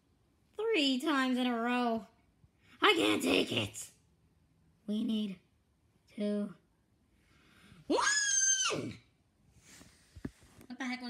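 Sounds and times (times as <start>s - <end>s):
person shrieking: 7.9s - 9.0s.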